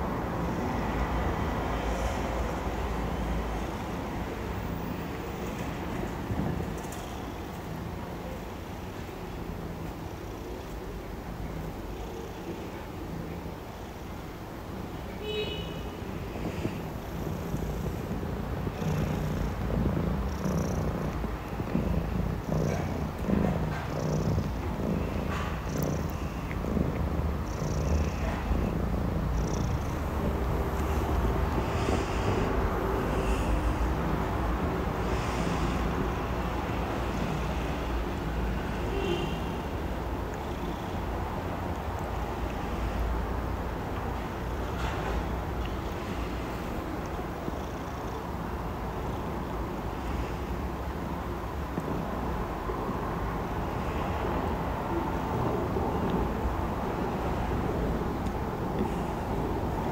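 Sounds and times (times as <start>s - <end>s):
kitten purring: 0.5s - 14.1s, 16.2s - 39.0s, 43.9s - 48.4s, 51.0s - 52.4s.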